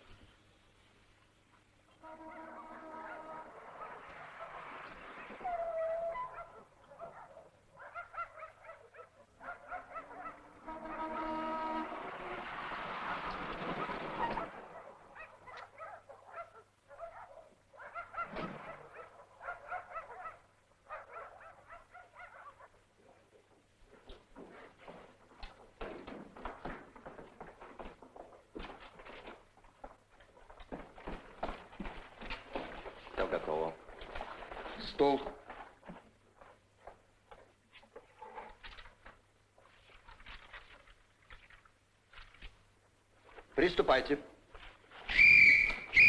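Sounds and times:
dogs barking: 2.2 - 11.2, 13.8 - 22.8.

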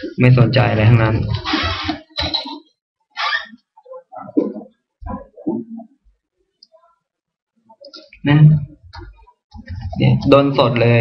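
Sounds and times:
person speaking: 3.2 - 11.0.

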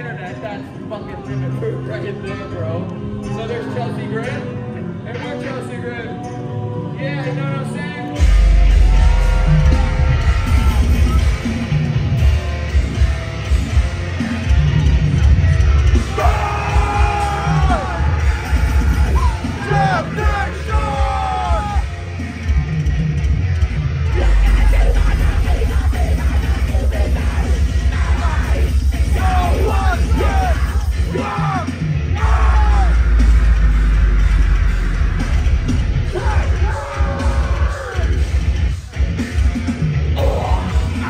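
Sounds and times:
bass: 0.0 - 41.0
distorted guitars: 4.4 - 41.0
deathcore band playing live: 8.2 - 41.0
drums: 8.2 - 41.0
harsh screamed vocals: 8.7 - 11.5, 16.0 - 21.9, 28.0 - 33.2, 36.0 - 38.4.

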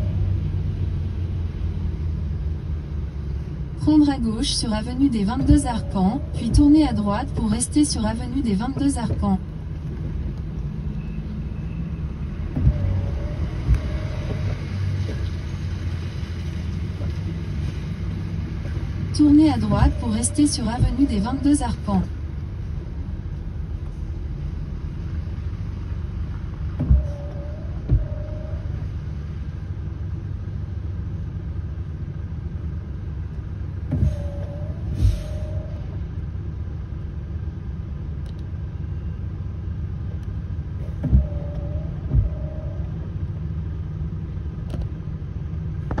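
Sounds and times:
road rumble inside car: 0.0 - 46.0
short thumps: 12.4 - 15.2, 26.6 - 28.4, 40.8 - 42.9.

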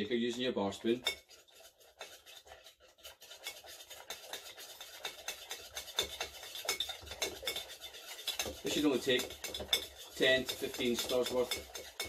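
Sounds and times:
spoon clinking in metal shaker: 3.3 - 12.0.

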